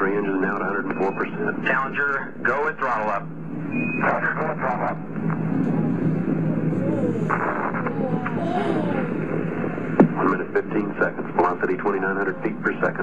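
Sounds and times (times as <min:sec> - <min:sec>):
radio voices: 0:00.0 - 0:02.8, 0:06.5 - 0:13.0
steady rushing noise: 0:01.3 - 0:13.0
low hum: 0:03.2 - 0:13.0.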